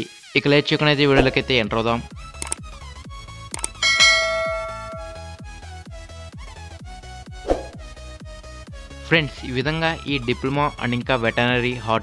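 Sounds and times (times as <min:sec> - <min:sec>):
bright bell ding: 0:03.8 - 0:05.6.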